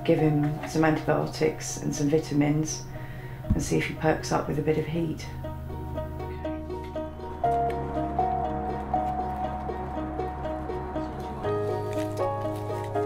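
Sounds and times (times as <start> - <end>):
steady bass line: 3.5 - 13.0.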